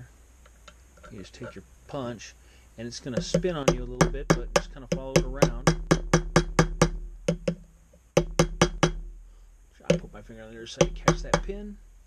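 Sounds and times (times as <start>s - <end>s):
hammer tapping metal punch: 3.1s - 9.0s, 9.9s - 11.7s.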